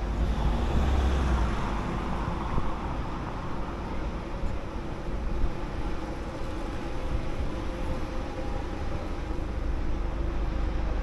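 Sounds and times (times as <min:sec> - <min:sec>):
road traffic rumble: 0:00.0 - 0:11.0
vehicle passing by: 0:00.2 - 0:02.1.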